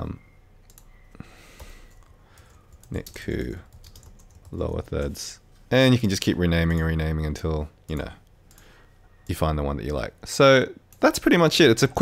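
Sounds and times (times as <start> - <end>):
computer keyboard clicks: 0.7 - 0.9, 1.6 - 5.2.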